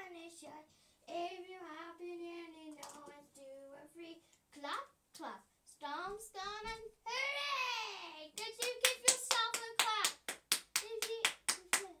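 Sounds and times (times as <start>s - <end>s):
girl singing: 0.0s - 12.0s
rapid hand claps: 8.4s - 12.0s.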